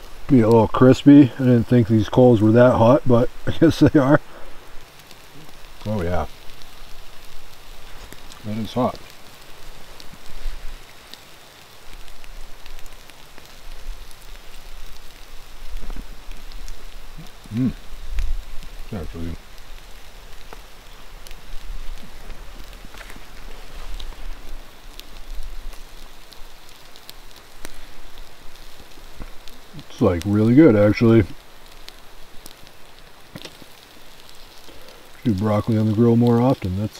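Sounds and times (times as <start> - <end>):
campfire coals crackling: 0.0 - 36.9
food sizzling on grill: 0.0 - 36.9.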